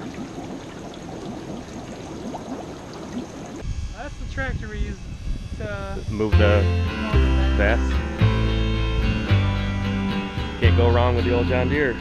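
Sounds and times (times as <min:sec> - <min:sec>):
water trickling and bubbling: 0:00.0 - 0:03.6
wind rumble on microphone: 0:02.4 - 0:06.6.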